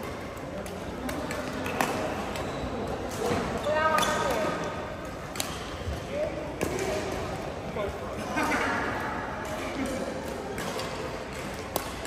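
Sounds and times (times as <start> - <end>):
rackets striking shuttlecock: 0.0 - 7.4, 9.4 - 12.0.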